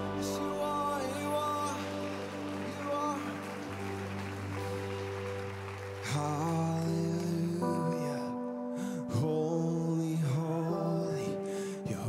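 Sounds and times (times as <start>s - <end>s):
electric bass: 0.0s - 6.6s
band playing slow song: 0.0s - 7.9s
person singing: 0.0s - 12.0s.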